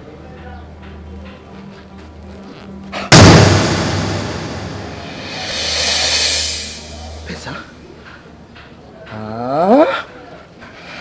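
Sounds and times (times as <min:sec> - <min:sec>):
loud boom hit: 0:03.1 - 0:07.2
whoosh: 0:03.1 - 0:07.3.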